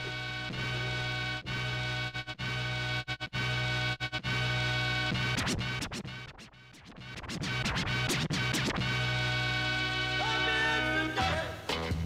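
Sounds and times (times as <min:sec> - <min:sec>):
music track playing: 0:00.0 - 0:12.0
dj scratching: 0:04.0 - 0:12.0.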